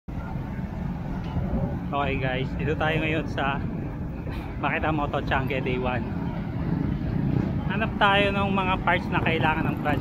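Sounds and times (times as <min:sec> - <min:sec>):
faint crowd chatter: 0:00.1 - 0:10.0
low rumble of vehicles: 0:00.1 - 0:10.0.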